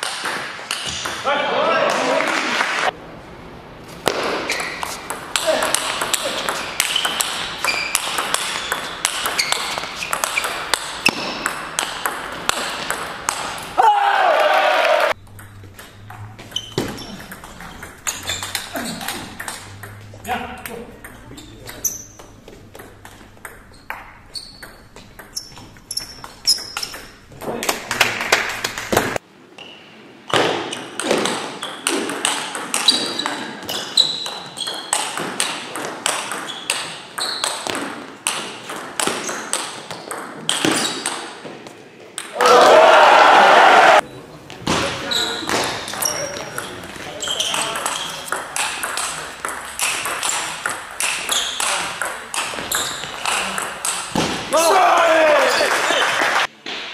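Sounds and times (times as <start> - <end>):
table tennis ball clicking: 4.6 - 13.5, 15.2 - 20.0, 47.7 - 54.2.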